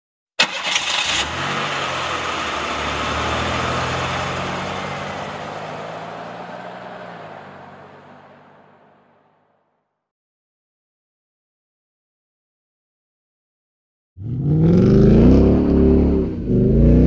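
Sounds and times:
crackling burst of engine starting: 0.4 - 6.9
car engine running: 0.4 - 9.4.

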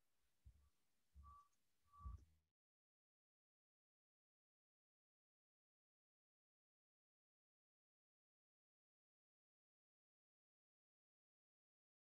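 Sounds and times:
faint short beeps: 0.5 - 2.3.

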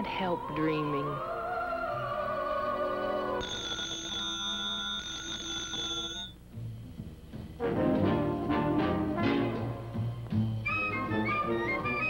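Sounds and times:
telephone bell ringing: 3.4 - 6.4.

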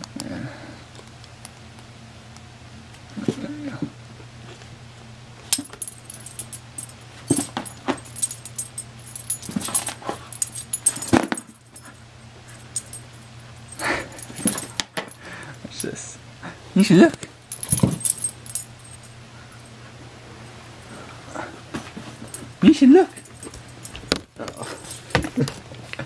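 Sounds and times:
dog collar tags jingling: 5.6 - 16.0, 17.5 - 19.7, 22.3 - 25.2.

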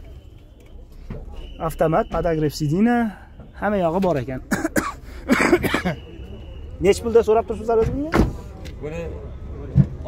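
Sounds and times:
car door slamming: 7.7 - 8.5.

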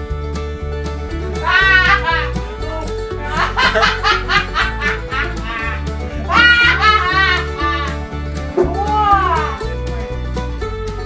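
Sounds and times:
country music with plucked strings: 0.0 - 11.0
cat meowing: 8.6 - 9.7.

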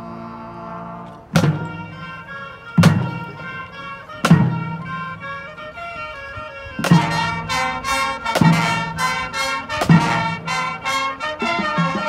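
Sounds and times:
marching band brass chords: 0.0 - 12.0
loud percussion accents: 1.4 - 3.6, 6.8 - 12.0.

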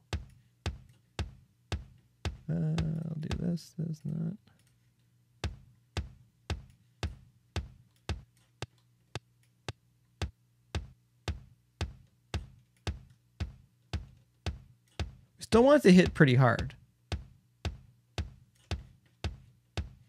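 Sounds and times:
kick drum hits: 0.0 - 3.4, 5.4 - 8.3, 10.2 - 15.2, 17.1 - 20.0.

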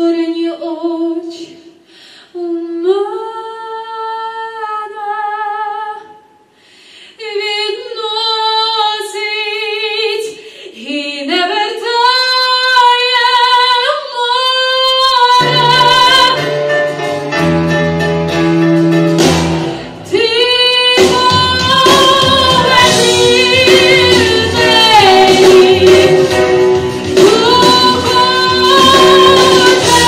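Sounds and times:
woman singing pop ballad: 7.2 - 16.5, 20.1 - 30.0
instrumental backing with bass: 15.4 - 20.2, 21.0 - 30.0.

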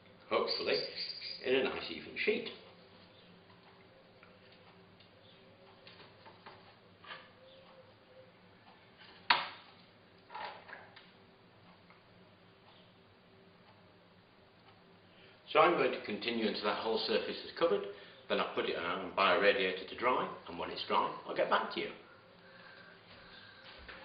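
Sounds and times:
low steady hum: 0.0 - 24.0.

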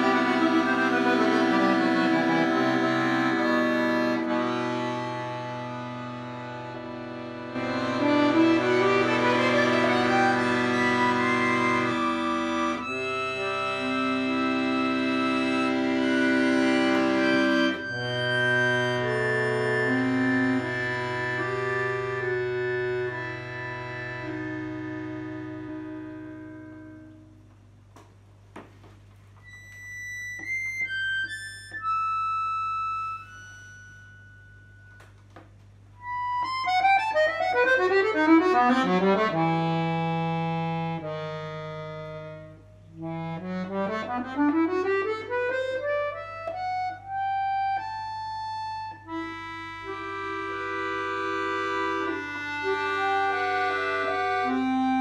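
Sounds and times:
accordion fast rising run: 0.0 - 27.0, 36.0 - 55.0
accordion playing chords: 0.0 - 55.0.

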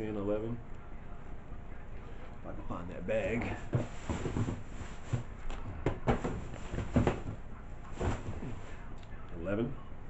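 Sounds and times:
hands rummaging items: 3.3 - 8.9.

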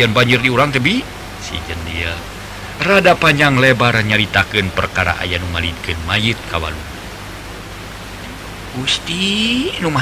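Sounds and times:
background hiss: 0.0 - 10.0
low steady hum: 0.0 - 10.0
person speaking: 8.7 - 10.0.

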